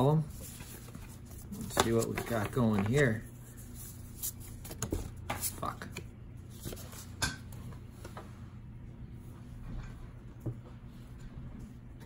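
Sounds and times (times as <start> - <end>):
steady low hum: 0.0 - 12.0
cards clicking and rustling: 0.4 - 3.2.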